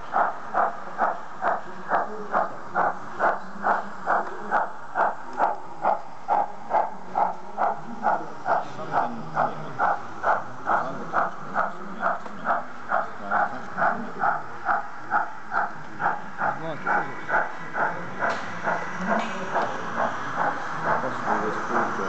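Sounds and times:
model steam train chuffing: 0.0s - 22.0s.

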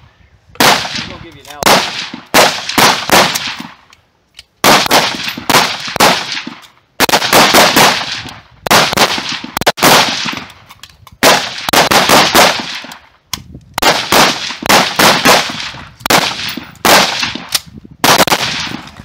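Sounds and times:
rapid rifle shots: 0.6s - 3.7s, 4.6s - 10.5s, 11.2s - 12.9s, 13.8s - 18.9s.

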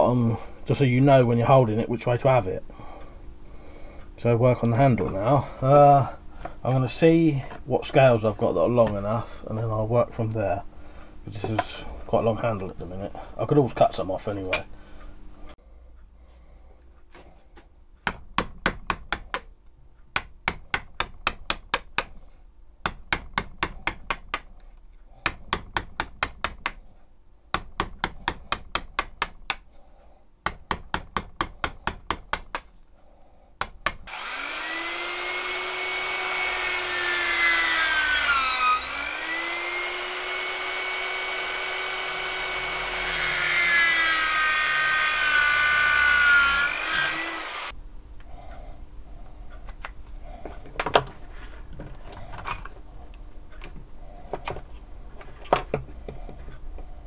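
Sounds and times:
hand saw cutting wood: 34.0s - 47.8s
electric drill boring into wood: 34.1s - 47.8s.

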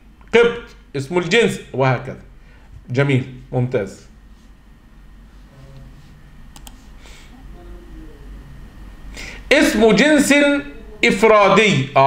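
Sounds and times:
low steady hum: 0.0s - 12.0s
computer clicks: 6.5s - 6.8s.

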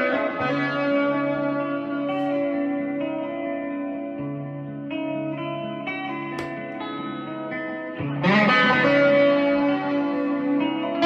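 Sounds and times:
electric guitar notes ringing: 0.0s - 11.0s.

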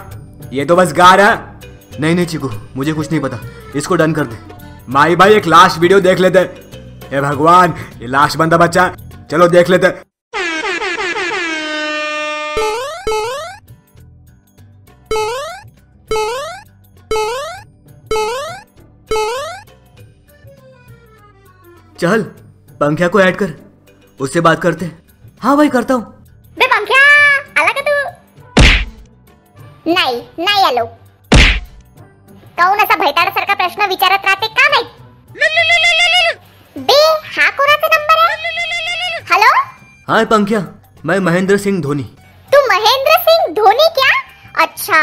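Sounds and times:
heavy cartoon thunks: 28.6s - 29.0s, 31.3s - 31.8s.

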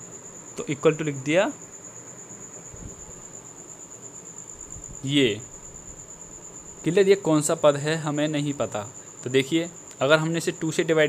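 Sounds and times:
continuous high-pitched trill: 0.0s - 11.0s
faint steady hiss: 0.0s - 11.0s
man speaking a word: 5.0s - 5.5s.

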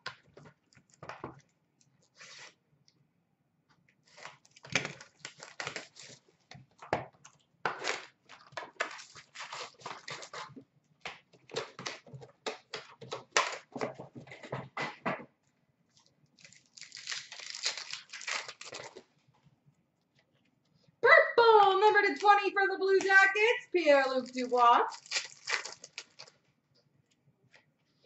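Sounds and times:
foil wrappers crinkling and tearing: 4.1s - 6.2s, 7.7s - 10.6s, 16.4s - 19.1s, 23.8s - 26.4s.

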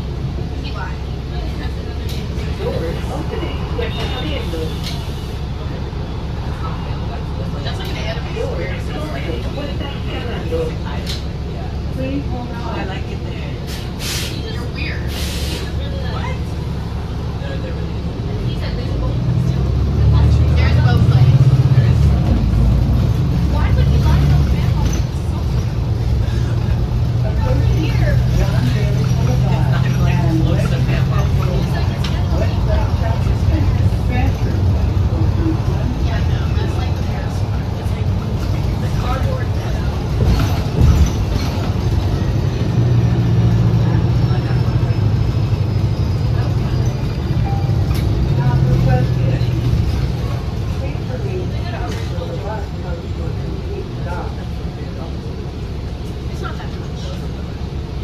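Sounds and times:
bus engine drone: 0.0s - 58.0s
road noise: 0.0s - 58.0s.

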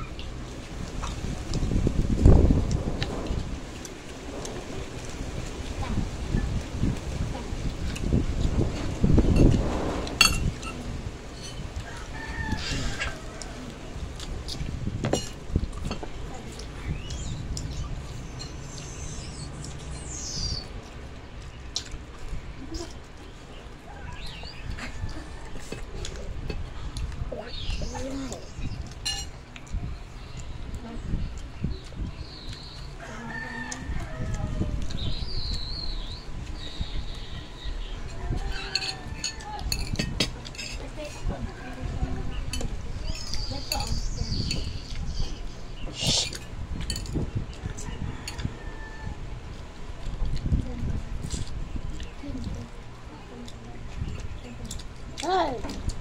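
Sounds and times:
rooster crowing: 11.8s - 14.0s, 33.0s - 34.8s, 47.7s - 49.4s.

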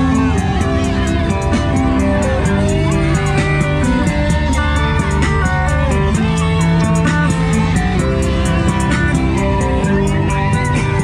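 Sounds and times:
guitar: 0.0s - 11.0s
steady drum beat: 0.0s - 11.0s.

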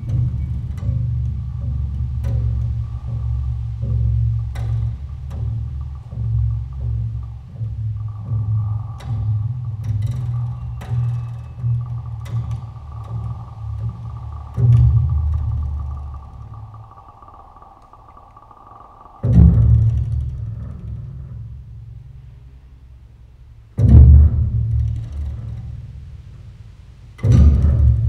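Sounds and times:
heavy low bass notes ringing: 0.0s - 28.0s
plucked double bass: 0.0s - 28.0s.

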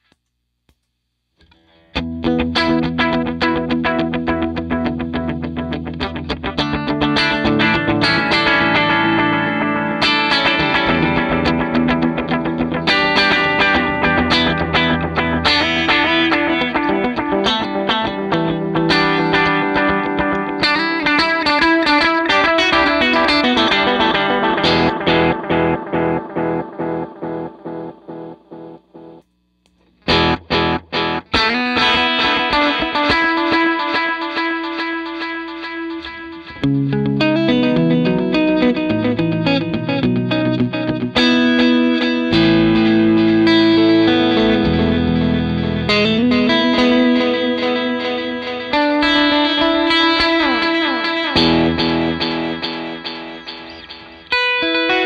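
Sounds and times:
electric guitar with echoing delay: 1.5s - 29.2s, 30.1s - 55.0s.

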